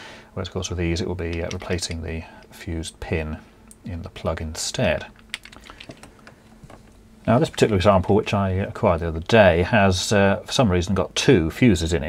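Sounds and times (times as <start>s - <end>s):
plastic plugs clicking and tapping: 1.3s - 2.0s.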